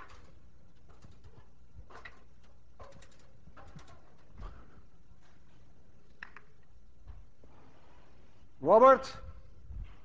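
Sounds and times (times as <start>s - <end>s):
stepladder creaks and knocks: 0.0s - 4.8s.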